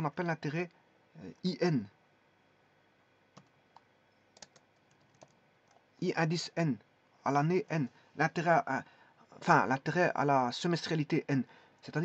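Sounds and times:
keyboard keystrokes: 3.4 - 5.8.

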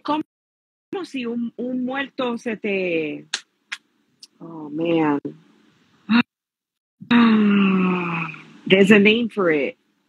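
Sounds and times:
woman groaning uhhh: 7.0 - 8.4.

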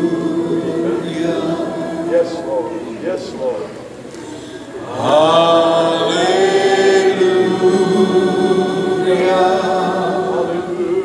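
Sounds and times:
congregation singing held note: 0.0 - 11.0.

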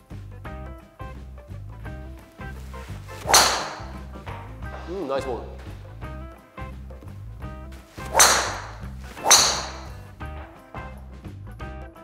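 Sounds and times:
background music with steady beat: 0.0 - 12.0
golf driver striking ball: 3.1 - 4.7, 8.0 - 10.1.

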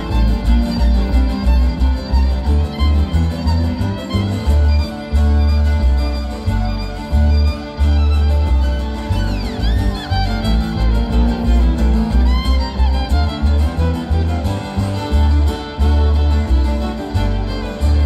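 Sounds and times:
bowed fiddle: 0.0 - 18.0
strummed acoustic guitars: 0.0 - 18.0
upright bass plucking: 0.0 - 18.0.

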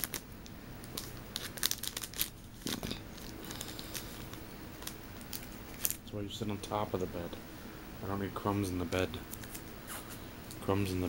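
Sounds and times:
paper packaging crinkling and tearing: 0.0 - 0.2, 0.9 - 6.0.

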